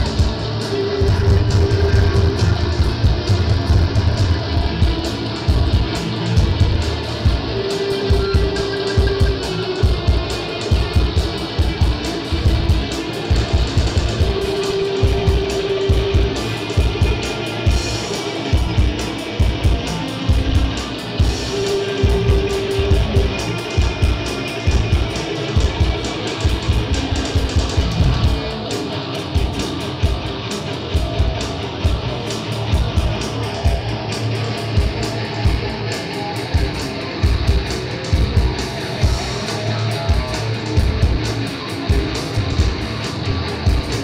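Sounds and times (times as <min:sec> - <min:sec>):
bass guitar: 0:00.0 - 0:44.0
drums: 0:00.0 - 0:44.0
electric guitar: 0:00.0 - 0:44.0.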